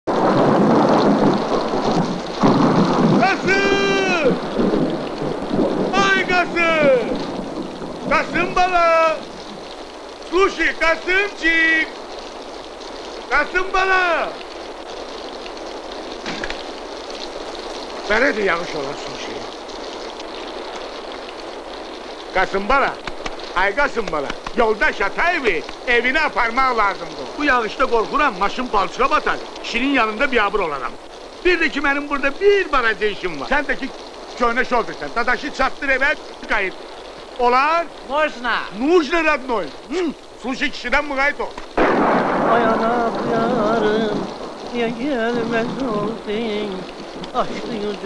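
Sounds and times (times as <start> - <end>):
heavy rain downpour: 0.0 - 48.0
thunder: 0.1 - 9.4, 41.8 - 47.7
person shouting long calls: 3.2 - 4.5, 5.9 - 7.2.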